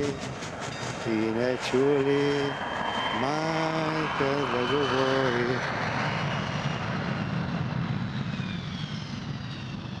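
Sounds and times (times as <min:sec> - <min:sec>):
faint falling high tones: 0:00.0 - 0:05.7
low rumbling: 0:00.0 - 0:10.0.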